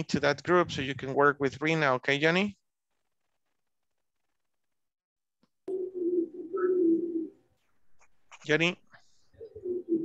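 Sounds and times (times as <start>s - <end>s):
dove cooing: 5.7s - 7.5s, 9.3s - 10.0s.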